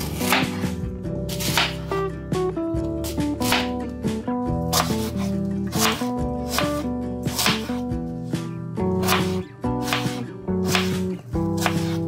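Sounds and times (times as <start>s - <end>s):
knife slicing apple on cutting board: 0.0s - 1.9s, 3.0s - 3.9s, 4.6s - 8.0s, 8.9s - 12.0s
background music with sustained notes: 0.0s - 12.0s.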